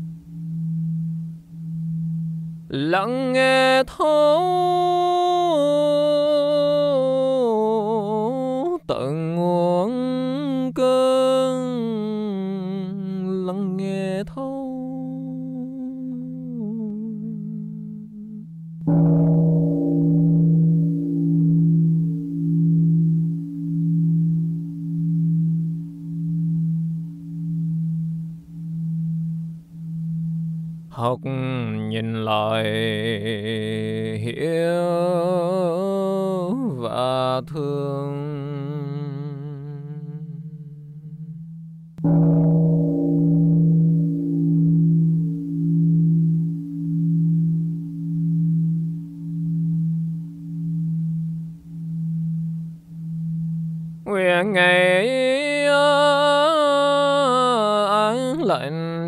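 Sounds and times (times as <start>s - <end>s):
large bell humming: 0.0s - 13.2s, 13.8s - 59.0s
temple bell ringing: 18.9s - 31.3s, 42.0s - 54.6s.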